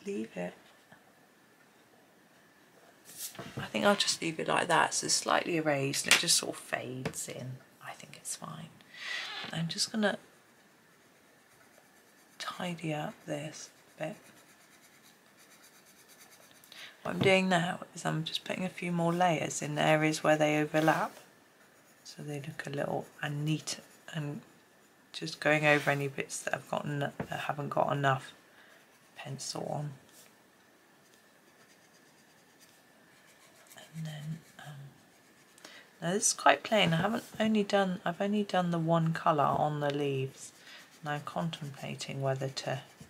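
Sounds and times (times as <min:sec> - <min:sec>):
coloured pencil scratching on paper: 0:09.6 - 0:16.7, 0:19.1 - 0:29.6, 0:31.0 - 0:35.6, 0:38.1 - 0:43.0.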